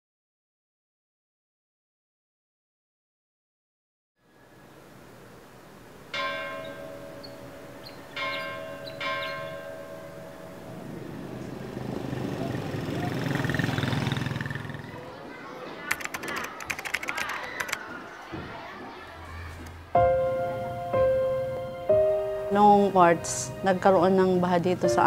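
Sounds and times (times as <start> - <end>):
rapid crackling: 15.8 - 17.9.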